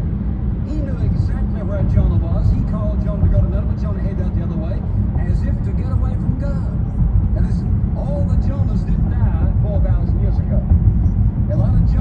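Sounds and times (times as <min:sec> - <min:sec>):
car driving road rumble: 0:00.0 - 0:12.0
man's voice: 0:00.7 - 0:10.7, 0:11.4 - 0:12.0.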